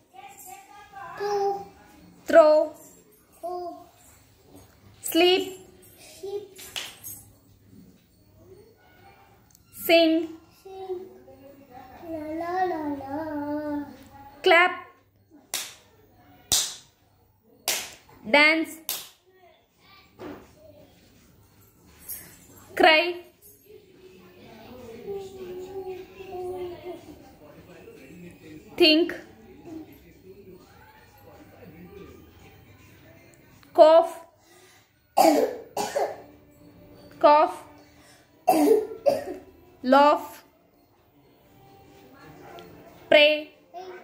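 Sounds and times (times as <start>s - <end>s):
child's hand claps: 6.6s - 7.2s, 15.5s - 15.9s, 16.5s - 16.9s, 17.6s - 18.0s, 18.9s - 19.2s
child coughing: 35.2s - 36.3s, 38.4s - 39.4s.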